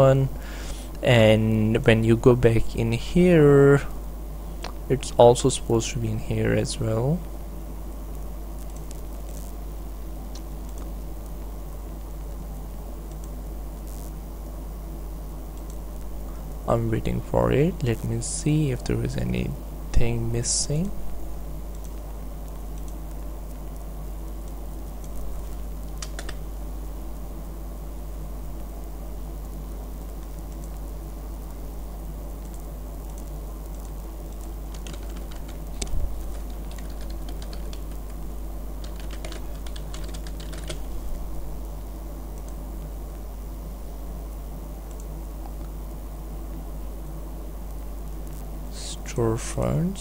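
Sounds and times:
steady low hum: 0:00.0 - 0:50.0
computer keyboard typing: 0:24.4 - 0:26.4, 0:32.4 - 0:38.2, 0:38.8 - 0:40.9.

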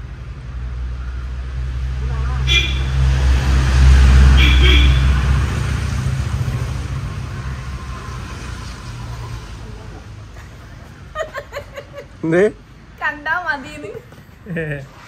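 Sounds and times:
vehicle passing by: 0:00.0 - 0:11.2.

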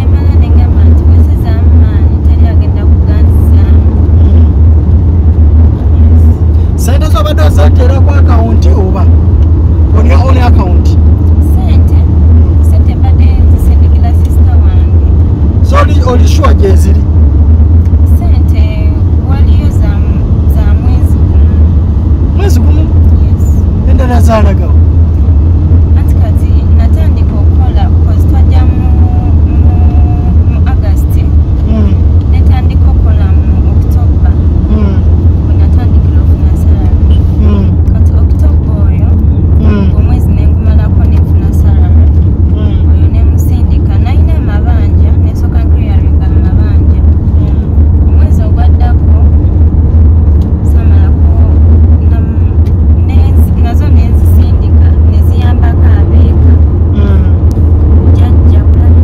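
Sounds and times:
car cabin low rumble: 0:00.0 - 0:59.0
faint voices: 0:56.9 - 0:57.4.

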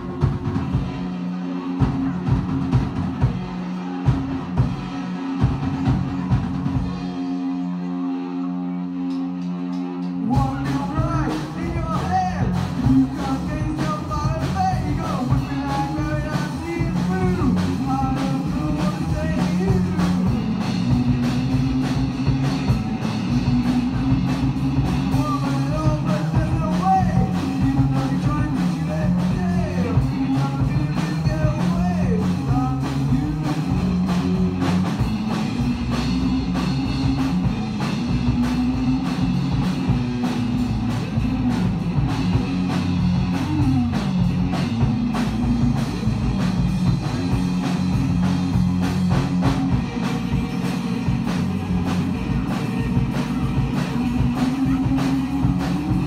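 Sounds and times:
live rock band playing: 0:00.0 - 0:56.0.

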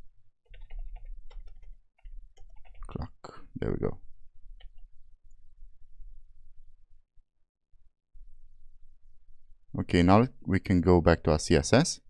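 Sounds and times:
keyboard typing: 0:00.5 - 0:03.0.

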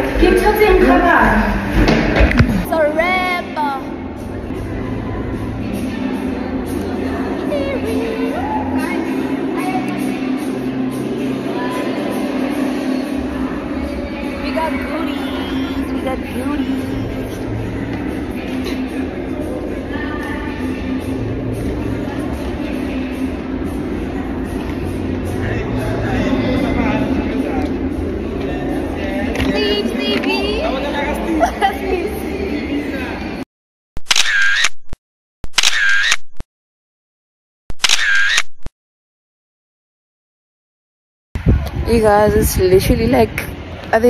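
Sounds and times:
indistinct voices: 0:00.0 - 0:33.4
camera shutter click: 0:34.1 - 0:34.8, 0:35.6 - 0:36.2, 0:37.8 - 0:38.5.

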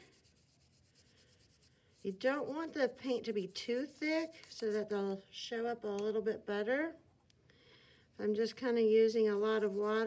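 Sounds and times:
wet paintbrush strokes on paper: 0:00.0 - 0:04.9, 0:08.1 - 0:10.0.

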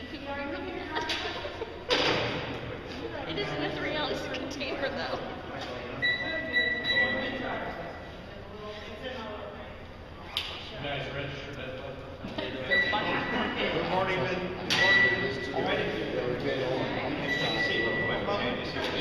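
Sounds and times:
voices talking: 0:00.0 - 0:19.0
metal detector wand beeping: 0:06.0 - 0:07.2.

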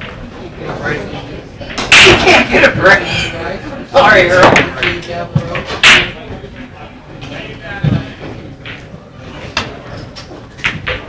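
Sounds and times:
pool balls knocking: 0:04.2 - 0:11.0.

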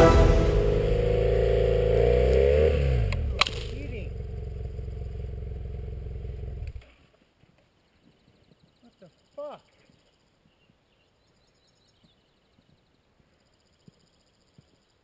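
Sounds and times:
background music: 0:00.0 - 0:01.7.

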